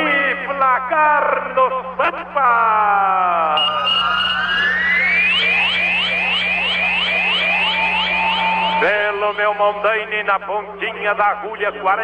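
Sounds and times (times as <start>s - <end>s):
falling pitch sweep: 3.4s - 9.9s
short rising electronic chirps: 3.5s - 9.9s
steady electronic beep: 3.5s - 10.2s.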